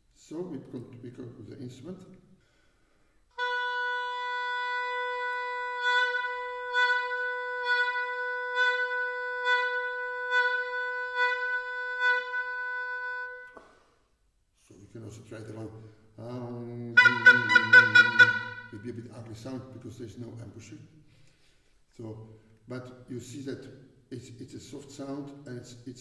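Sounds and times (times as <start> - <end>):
oboe holding a steady note: 3.4 - 13.6, 17.0 - 18.8.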